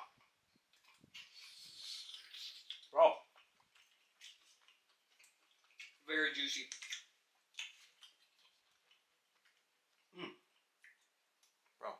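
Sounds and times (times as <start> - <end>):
person chewing: 0.0 - 6.0, 6.7 - 11.8.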